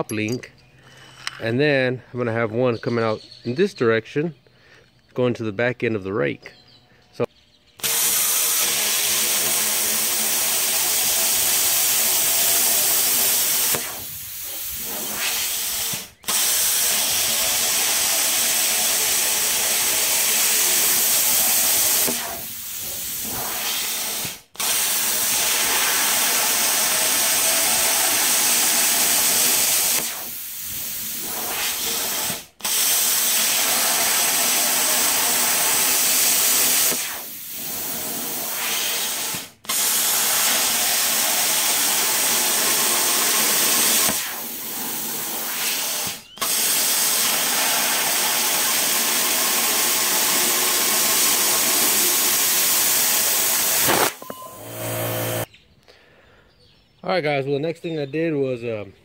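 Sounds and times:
plasma cutter hissing: 7.8 - 55.5.

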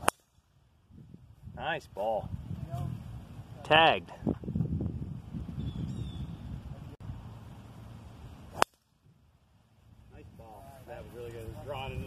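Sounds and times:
golf club striking ball: 8.4 - 9.0.

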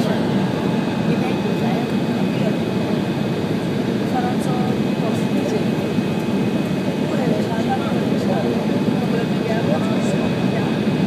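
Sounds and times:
jet engine and rushing air: 0.0 - 9.4
faint passenger voices: 0.0 - 11.0.

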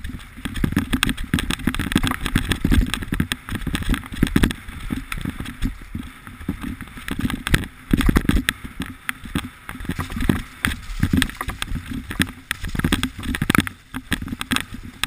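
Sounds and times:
bike clattering over bumps: 0.0 - 15.0
wind rumble on microphone: 0.0 - 15.0.

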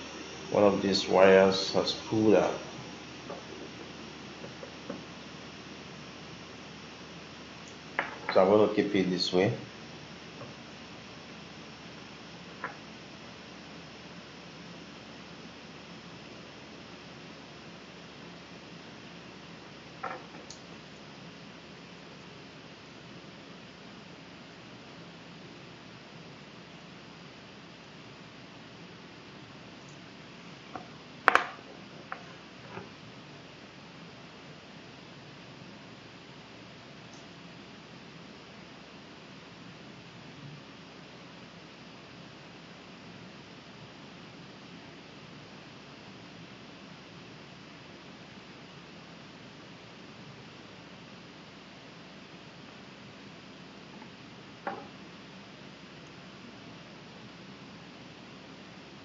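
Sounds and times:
low hiss of room tone: 0.0 - 59.0.

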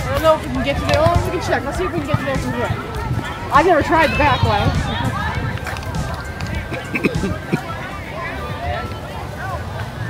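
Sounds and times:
faint voices: 6.3 - 8.2.

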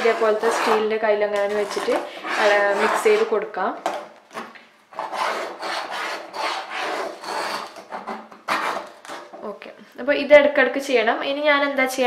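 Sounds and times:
spatula scraping steel saucepan: 0.0 - 3.5, 5.0 - 9.4.

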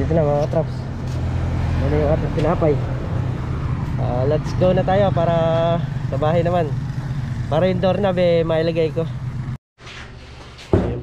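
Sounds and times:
motorcycle engine running: 3.6 - 9.6.

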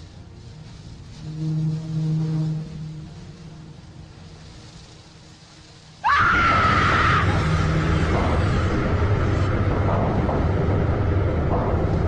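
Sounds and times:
high-pitched scream: 6.0 - 7.6
loud low drone: 6.5 - 12.0.

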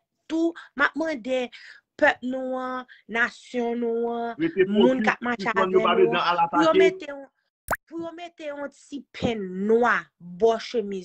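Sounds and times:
person talking: 3.6 - 7.3.

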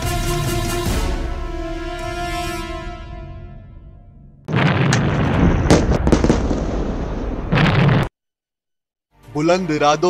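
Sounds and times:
explosions crackling and banging: 4.5 - 8.1.

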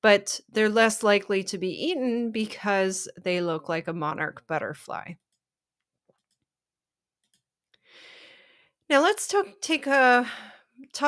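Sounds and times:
woman breathing in softly: 7.8 - 8.8.

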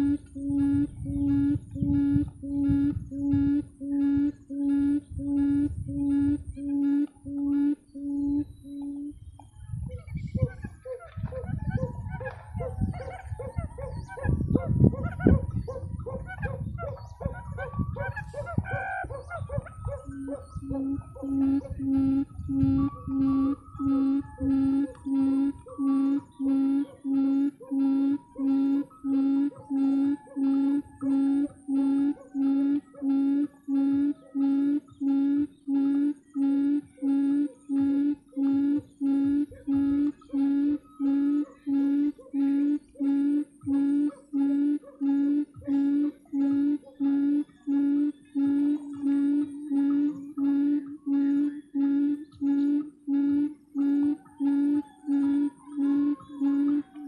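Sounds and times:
bird calls: 0.0 - 57.0
quail hooting: 0.0 - 57.0.

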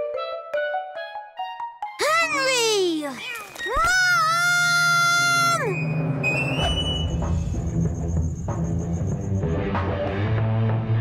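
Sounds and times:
cartoon boy wailing: 2.0 - 5.8.

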